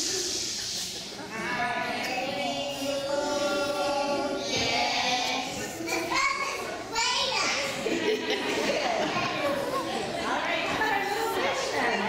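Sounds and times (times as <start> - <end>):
children singing together: 0.0 - 11.7.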